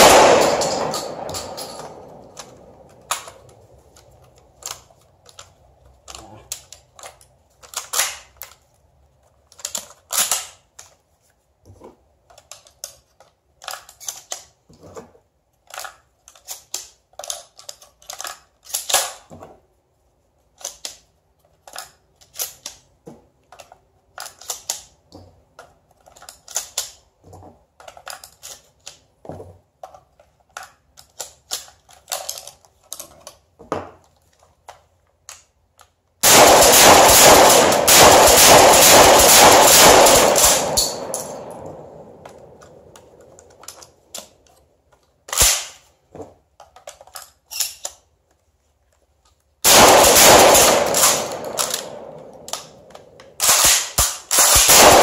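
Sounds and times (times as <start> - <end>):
shotgun shots: 0.0 - 2.9, 36.2 - 42.9, 49.6 - 55.0
shotgun pump clacks: 49.7 - 55.0.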